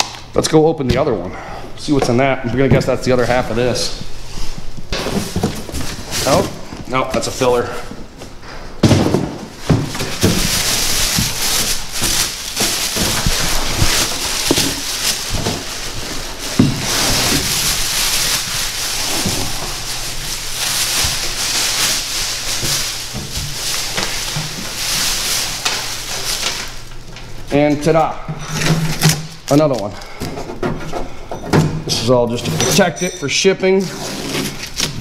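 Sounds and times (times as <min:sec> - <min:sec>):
plastic bag crinkling: 0:04.6 - 0:08.2, 0:08.9 - 0:28.0
panel knocking in cardboard box: 0:08.8 - 0:10.6.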